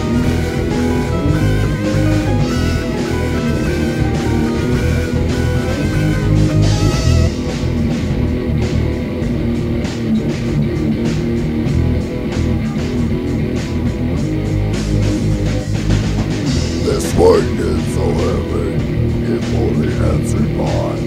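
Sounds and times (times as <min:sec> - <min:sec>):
electric guitars: 0:00.0 - 0:21.0.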